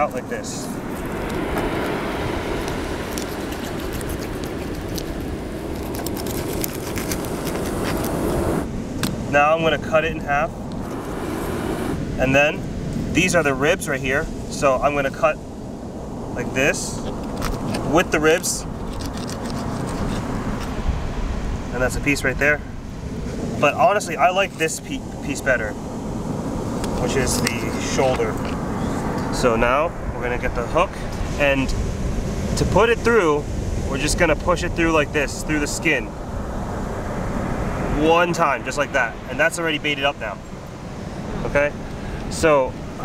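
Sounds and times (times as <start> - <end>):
beach surf: 0.0 - 43.0
wind: 0.0 - 43.0
knife cutting through fish skin: 2.6 - 8.4, 18.8 - 20.3.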